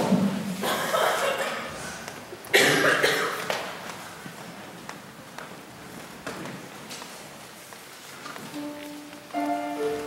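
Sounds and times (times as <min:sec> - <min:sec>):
woman coughing into microphone: 0:02.5 - 0:03.5.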